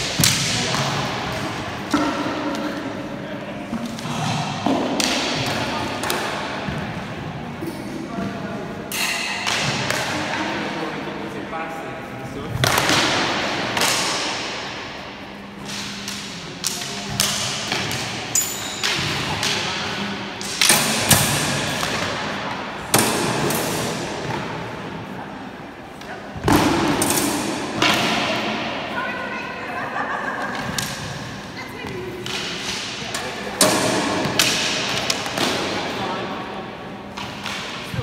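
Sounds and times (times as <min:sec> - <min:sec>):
swords clashing in a hall: 0:00.0 - 0:11.1, 0:12.3 - 0:31.5, 0:32.1 - 0:38.0.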